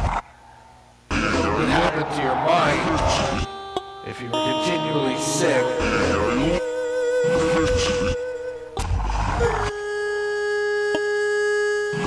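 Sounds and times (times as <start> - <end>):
steady held tone: 1.4 - 10.9.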